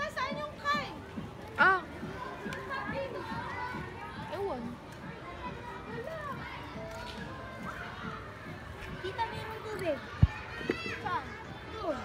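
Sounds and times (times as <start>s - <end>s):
children playing and chattering: 0.0s - 12.0s.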